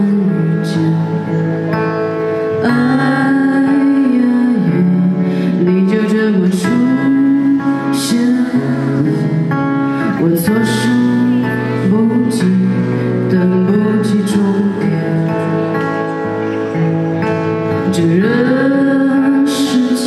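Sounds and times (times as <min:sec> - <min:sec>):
keyboard: 0:00.0 - 0:20.0
person singing: 0:00.0 - 0:20.0
strummed acoustic guitar: 0:00.0 - 0:20.0.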